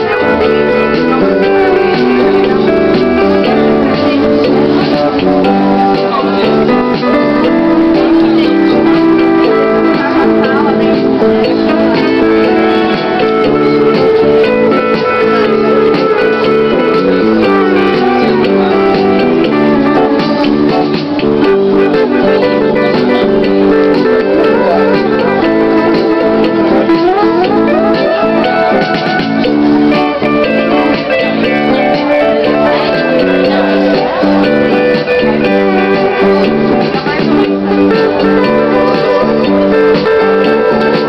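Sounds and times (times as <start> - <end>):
electric guitar melody: 0.0 - 41.0.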